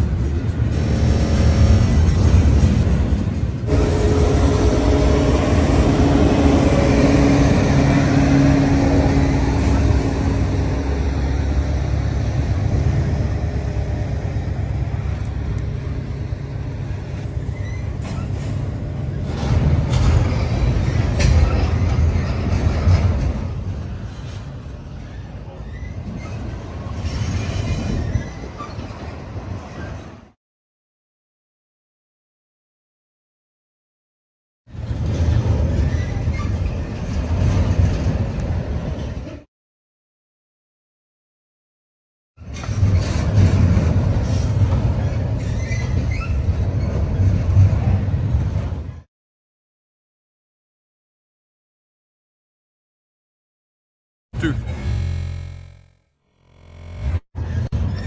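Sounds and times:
freight train rumbling past: 0.0s - 30.3s, 34.7s - 39.5s, 42.4s - 49.1s.

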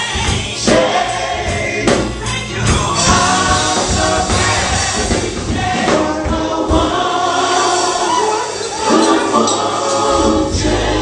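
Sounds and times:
women singing into microphones: 0.0s - 11.0s
low beating accompaniment: 0.1s - 8.0s.

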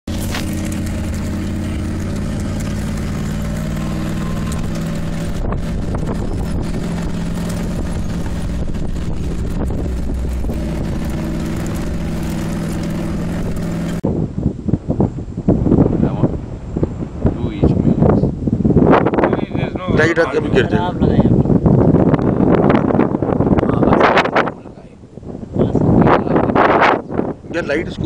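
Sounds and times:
vehicle engine running: 0.0s - 14.0s
road noise: 0.0s - 28.0s.

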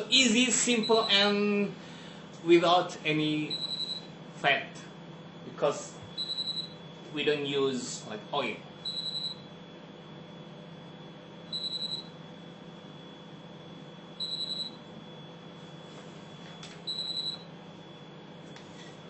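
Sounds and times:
microwave oven humming: 0.0s - 19.0s
high electronic beep: 3.5s - 4.0s, 6.2s - 6.8s, 8.9s - 9.4s, 11.6s - 12.1s, 14.2s - 14.8s.

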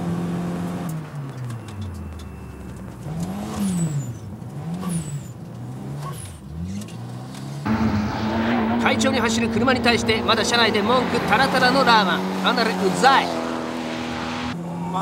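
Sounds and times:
minivan engine revving: 0.0s - 15.0s.

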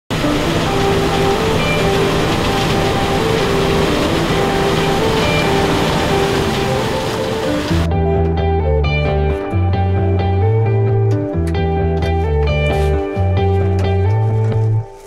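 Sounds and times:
combine harvester rushing noise: 0.1s - 7.9s
music with held notes: 0.1s - 15.0s.

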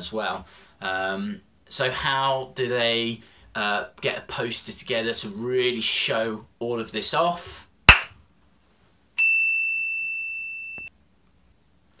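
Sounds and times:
bright bell-like ding: 9.2s - 10.9s.

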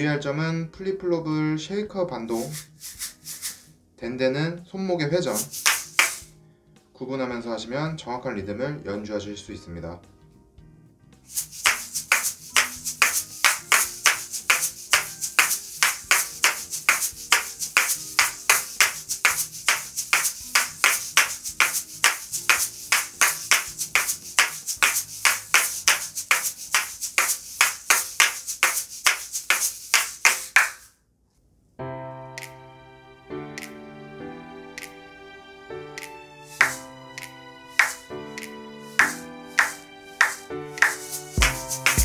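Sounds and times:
shaker balls clacking and rattling: 2.3s - 3.7s, 5.3s - 6.3s, 11.2s - 31.0s, 36.5s - 36.8s, 37.8s - 42.0s.

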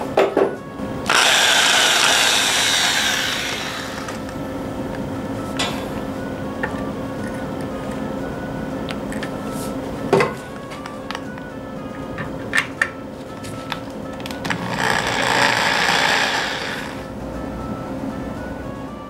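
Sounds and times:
background music: 0.0s - 19.0s
cordless drill boring into steel: 1.1s - 4.2s, 14.7s - 17.0s.

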